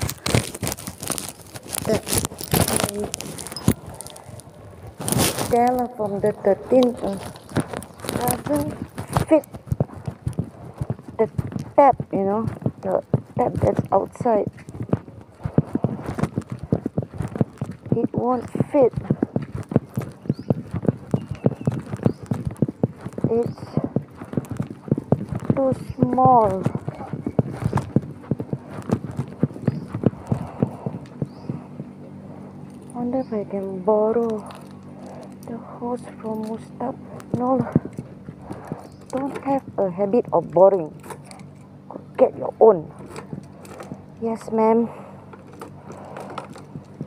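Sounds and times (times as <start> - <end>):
quick footsteps on pavement: 0.0 - 47.0
phone rubbing against microphone: 37.0 - 39.6.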